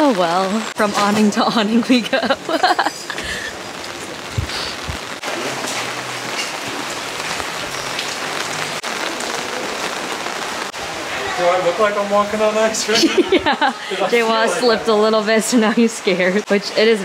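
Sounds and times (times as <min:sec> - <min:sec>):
rain on umbrellas and cobblestones: 0:00.0 - 0:17.0.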